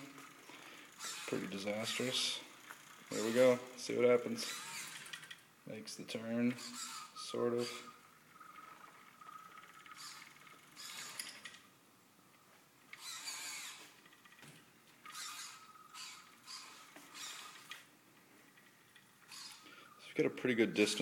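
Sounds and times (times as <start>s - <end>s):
robot drive motors whirring: 0.0s - 5.4s, 6.2s - 11.6s, 12.9s - 17.9s, 18.5s - 19.7s.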